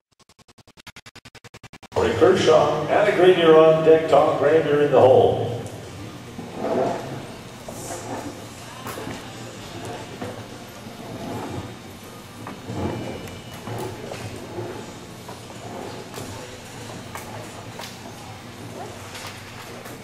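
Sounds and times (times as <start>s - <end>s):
steady low hum: 1.8s - 20.0s.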